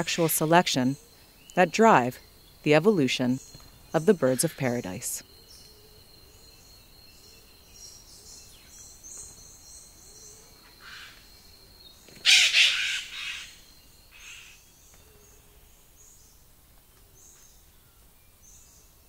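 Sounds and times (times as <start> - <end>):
harsh crow-like bird call: 10.8 - 11.2, 12.2 - 14.6.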